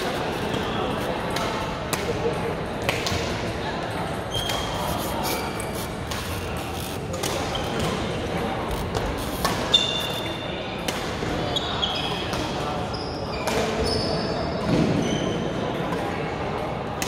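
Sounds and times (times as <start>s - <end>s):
shoes squeaking on court floor: 0.0s - 2.4s, 4.1s - 10.6s, 11.4s - 15.5s
rackets striking shuttlecocks: 5.4s - 11.4s.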